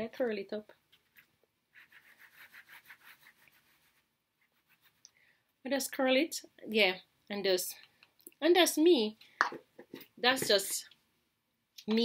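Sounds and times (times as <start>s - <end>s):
hand rubbing through curly hair: 1.1s - 5.0s.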